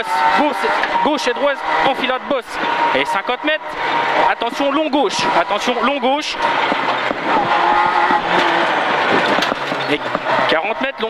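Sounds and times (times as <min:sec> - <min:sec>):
rally car engine at high revs: 0:00.0 - 0:11.0
tyre and road noise: 0:00.0 - 0:11.0.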